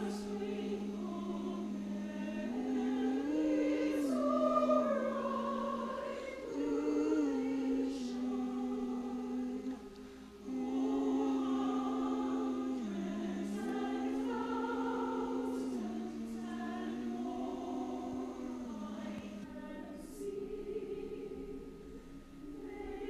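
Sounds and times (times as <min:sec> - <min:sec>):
choir singing long notes: 0:00.0 - 0:23.0.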